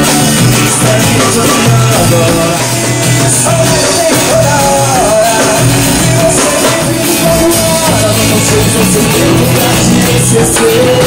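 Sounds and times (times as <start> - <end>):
acoustic guitar: 0.0 - 11.0
drums: 0.0 - 11.0
jingling hand drum: 0.0 - 11.0
man singing: 0.0 - 11.0.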